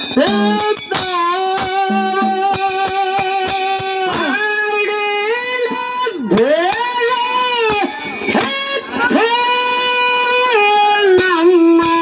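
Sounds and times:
hand cymbal strokes: 0:00.0 - 0:04.4
drum strokes: 0:00.2 - 0:03.3.

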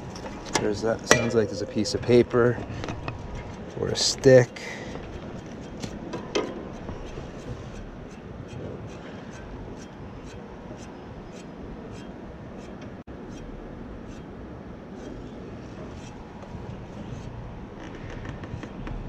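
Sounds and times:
air conditioner fan running: 0:00.0 - 0:19.0.

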